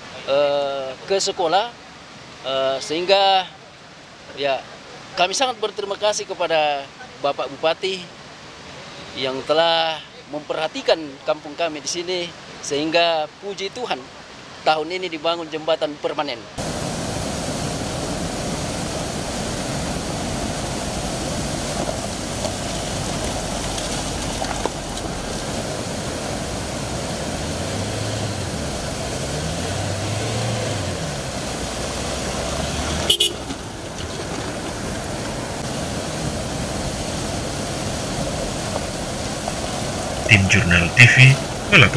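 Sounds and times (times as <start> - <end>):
river rushing over rocks: 0.0 - 41.9
vehicle engine revving: 26.4 - 33.6.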